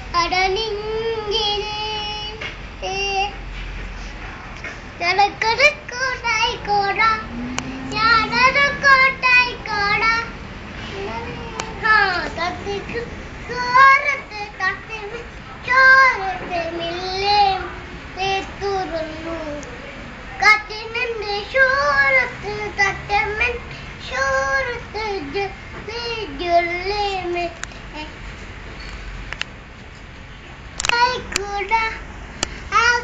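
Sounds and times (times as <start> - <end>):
boy singing: 0.1 - 3.4, 5.0 - 19.8, 20.4 - 28.2, 30.8 - 32.0, 32.7 - 33.0.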